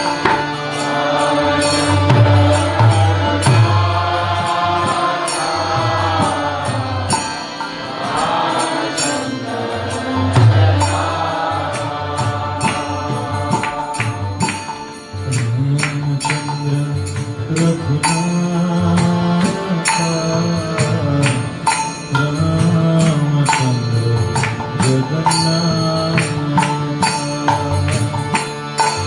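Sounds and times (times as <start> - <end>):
harmonium chords: 0.0 - 29.0
violin: 0.0 - 29.0.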